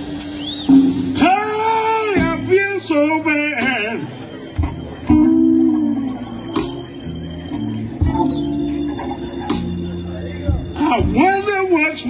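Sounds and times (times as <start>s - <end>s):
bass guitar: 0.0s - 12.0s
drums: 0.0s - 12.0s
electric guitar lead with vibrato: 0.0s - 12.0s
hammond organ: 0.0s - 12.0s.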